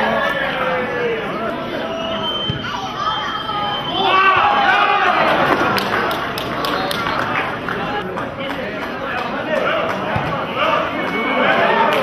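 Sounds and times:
people shouting and calling: 0.0s - 5.7s.

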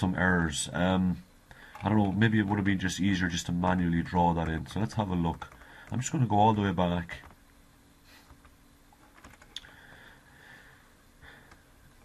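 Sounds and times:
computer keyboard keystrokes: 1.6s - 2.7s, 4.4s - 6.2s, 8.3s - 9.8s.

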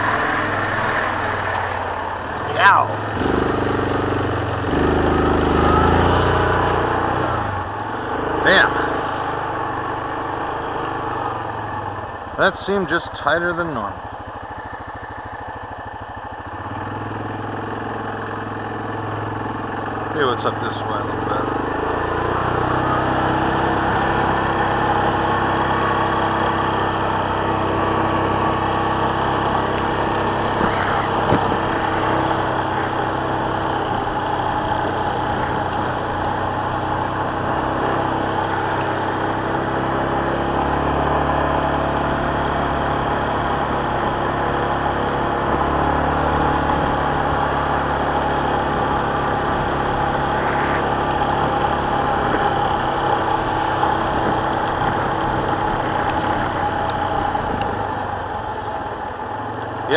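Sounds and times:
quad bike engine running: 0.0s - 59.9s.

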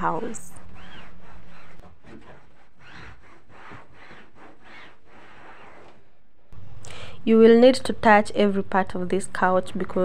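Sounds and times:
cloth scrubbing fabric: 0.0s - 6.1s.

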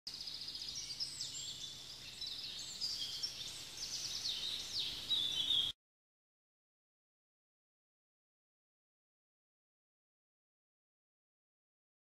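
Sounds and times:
birdsong chirps and trills: 0.1s - 5.8s.

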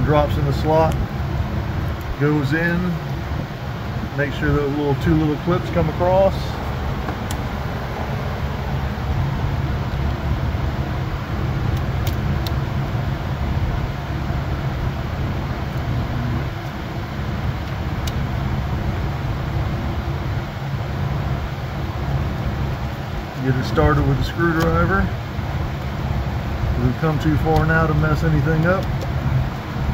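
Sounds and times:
low mechanical hum: 0.0s - 29.9s.

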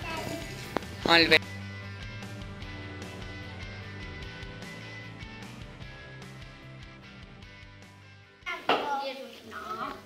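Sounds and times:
child talking: 0.0s - 0.6s, 8.4s - 10.0s
background music: 0.0s - 10.0s.

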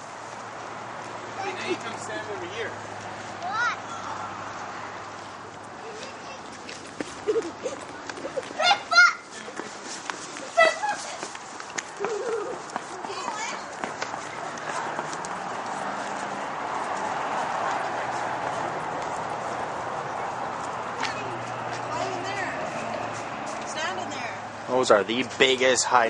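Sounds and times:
outdoor background noise: 0.0s - 26.0s
light footsteps: 0.2s - 24.6s
child calling out: 3.4s - 4.2s, 8.6s - 9.3s.

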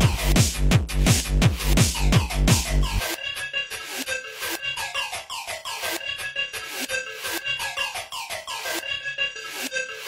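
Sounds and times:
hard techno synth sweeps: 0.0s - 10.0s.

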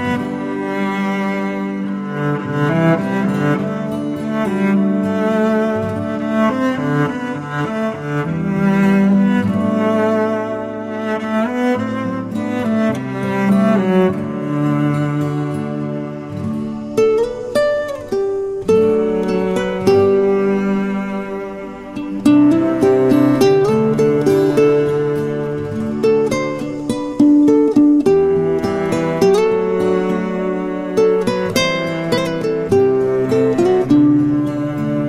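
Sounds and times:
plucked string notes: 0.0s - 35.0s.

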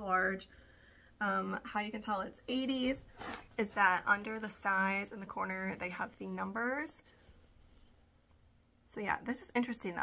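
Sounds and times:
fabric rustling: 6.6s - 8.2s.

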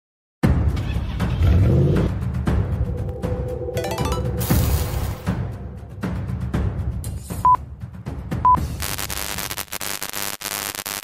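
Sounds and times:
loud intro music: 1.9s - 8.9s.

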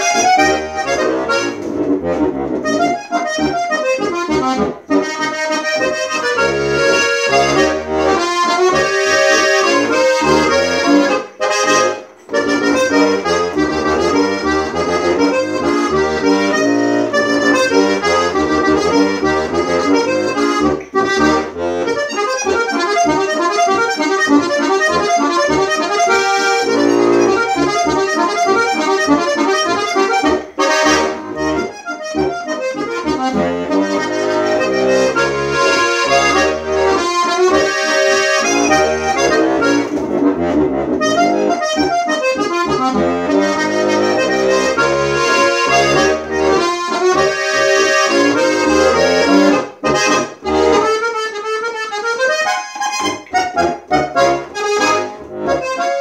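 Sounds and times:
button accordion folk tune: 0.0s - 56.0s.

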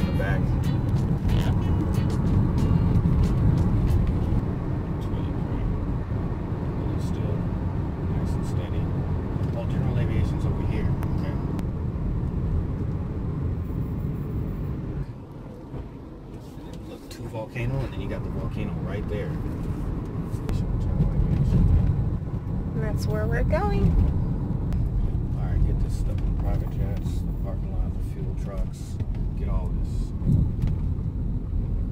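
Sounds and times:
road and engine rumble in car: 0.0s - 31.9s.

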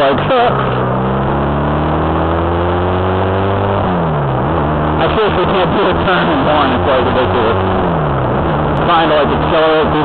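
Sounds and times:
motorcycle engine: 0.0s - 10.0s.

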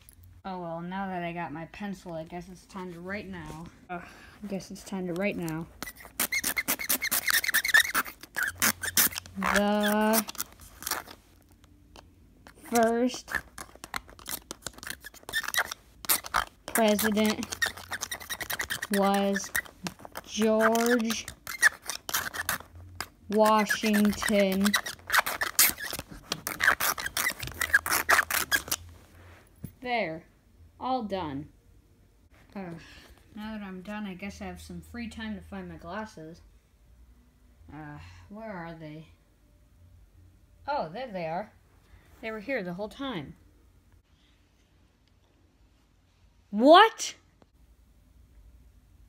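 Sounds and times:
pencil scribbling on screen: 4.5s - 11.3s, 12.5s - 28.9s.

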